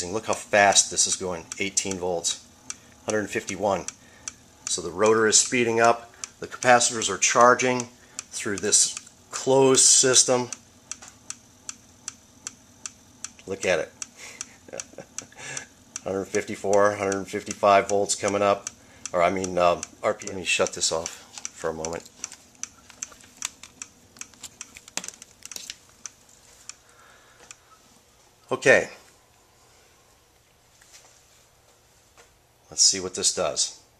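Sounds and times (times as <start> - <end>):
motor rotor clicking: 0.0 - 26.8
faint steady hum: 0.0 - 33.9.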